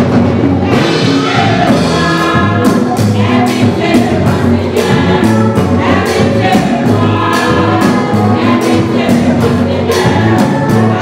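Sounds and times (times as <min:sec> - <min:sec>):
steady drum beat: 0:00.0 - 0:11.0
women's gospel choir singing: 0:00.6 - 0:11.0.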